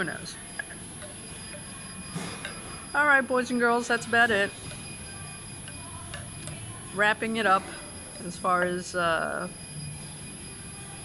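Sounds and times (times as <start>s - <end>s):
high-pitched electronic whine: 0.0s - 11.0s.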